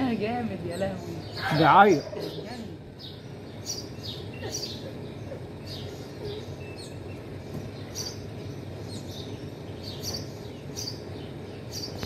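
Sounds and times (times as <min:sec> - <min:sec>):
small birds chirping: 0:00.0 - 0:12.0
steady low background hum: 0:00.0 - 0:12.0.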